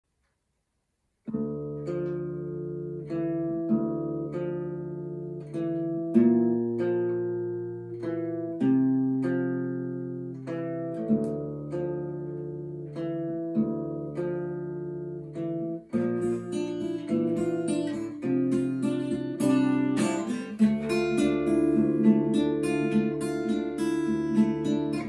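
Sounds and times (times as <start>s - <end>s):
acoustic guitar chords ringing: 1.3s - 25.0s.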